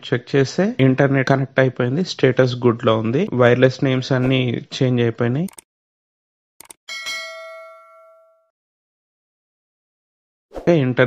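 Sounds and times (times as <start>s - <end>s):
notification bell ding: 6.9s - 8.5s.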